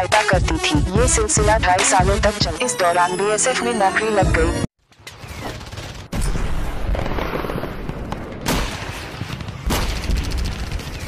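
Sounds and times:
blasts: 0:05.2 - 0:11.0
gunfire crackle: 0:05.3 - 0:11.0.

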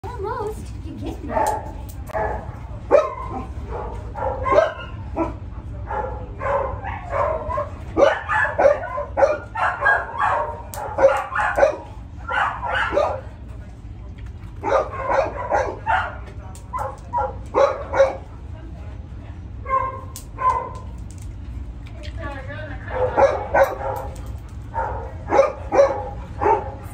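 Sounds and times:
dog barking: 0:01.3 - 0:13.3, 0:14.6 - 0:18.3, 0:19.6 - 0:20.8, 0:22.9 - 0:26.9.

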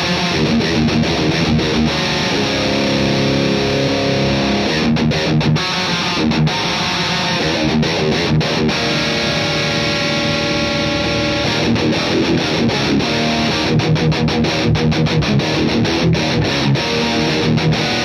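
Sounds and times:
distorted electric guitar riff: 0:00.0 - 0:18.0.

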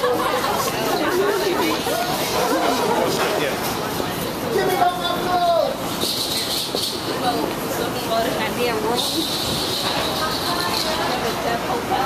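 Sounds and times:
people chatting: 0:00.0 - 0:06.0, 0:07.0 - 0:12.0.

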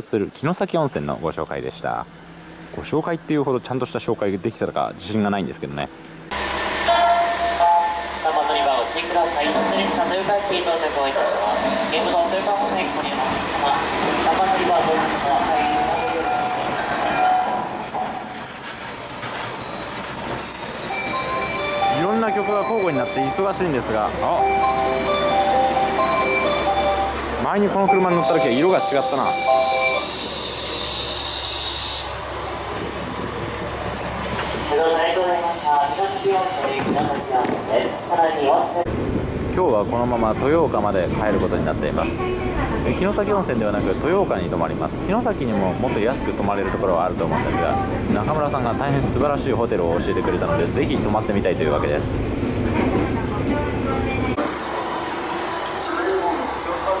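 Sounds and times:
train carriage rumble: 0:00.0 - 0:30.9, 0:32.3 - 0:57.0
diesel railcar engine idling: 0:00.8 - 0:57.0.

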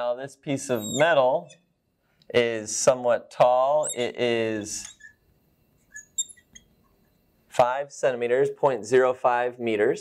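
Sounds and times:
marker squeaking on glass: 0:00.7 - 0:01.7, 0:03.8 - 0:07.1.

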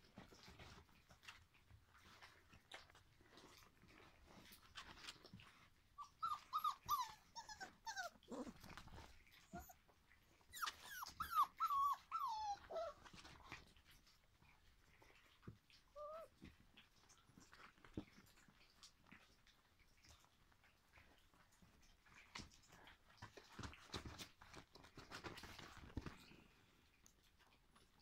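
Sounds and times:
puppies whining and yelping: 0:05.9 - 0:13.5, 0:15.9 - 0:16.4.

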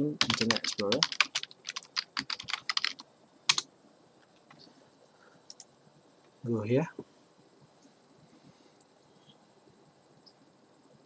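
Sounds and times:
typing on computer keyboard: 0:00.2 - 0:03.6.

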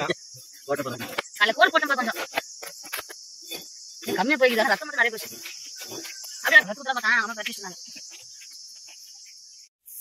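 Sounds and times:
voices talking: 0:00.0 - 0:09.1
high insect drone: 0:00.0 - 0:10.0
cleaver scraping fish scales: 0:02.1 - 0:06.8.

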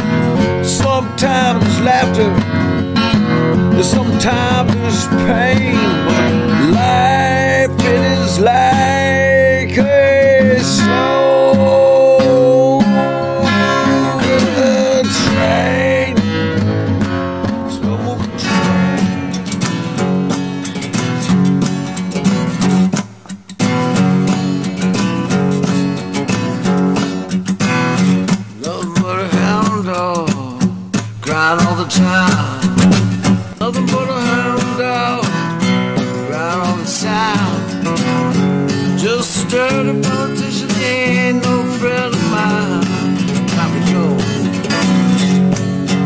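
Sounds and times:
steady bass: 0:00.0 - 0:20.3
acoustic guitar melody: 0:00.0 - 0:46.0.

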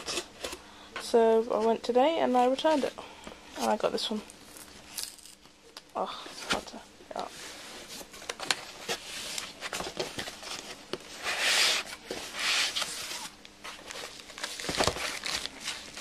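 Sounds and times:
packaging rustling: 0:11.7 - 0:16.0.

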